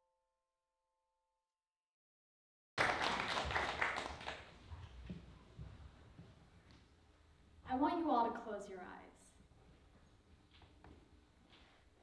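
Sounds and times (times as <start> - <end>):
audience applause: 2.8 - 4.5.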